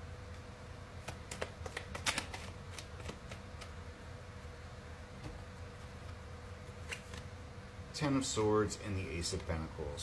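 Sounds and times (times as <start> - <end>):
cards being shuffled: 1.0 - 3.8, 6.6 - 7.3.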